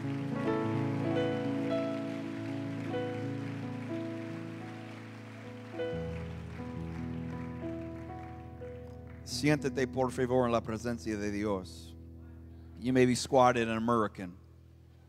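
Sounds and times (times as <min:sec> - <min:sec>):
sustained keyboard chords: 0:00.0 - 0:13.2.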